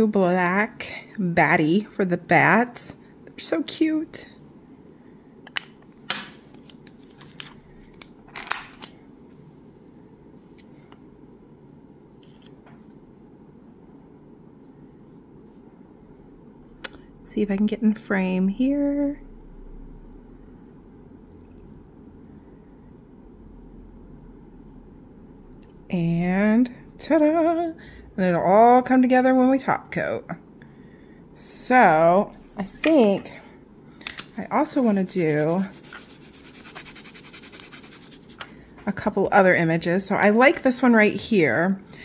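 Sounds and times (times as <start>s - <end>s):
low background hum: 0.0s - 42.0s.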